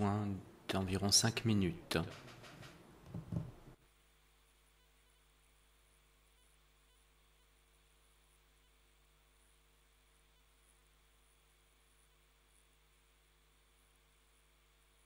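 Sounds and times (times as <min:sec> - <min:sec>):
faint steady hum: 0:00.0 - 0:15.0.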